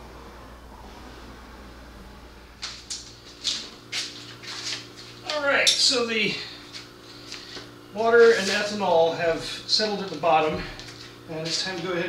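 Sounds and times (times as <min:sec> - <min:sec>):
low steady hum: 0:00.0 - 0:12.0
flip-flop footsteps on concrete: 0:02.6 - 0:05.4, 0:06.7 - 0:08.7.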